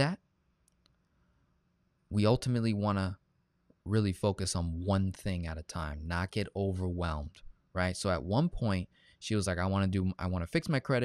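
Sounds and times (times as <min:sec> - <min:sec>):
man speaking: 0:00.0 - 0:00.2, 0:02.1 - 0:03.2, 0:03.8 - 0:11.0.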